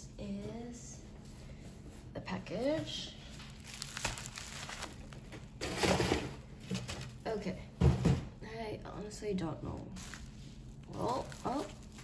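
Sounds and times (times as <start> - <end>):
bubble wrap crinkling: 3.2 - 5.8, 9.8 - 12.0.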